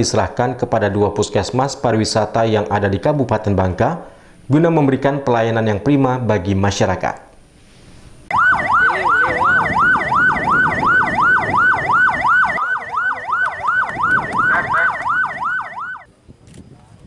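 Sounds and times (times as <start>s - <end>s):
ambulance siren yelping: 8.3s - 16.1s.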